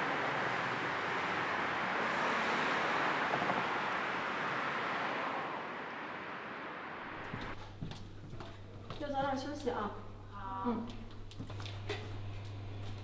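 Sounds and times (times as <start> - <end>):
road traffic rushing: 0.0 - 7.6.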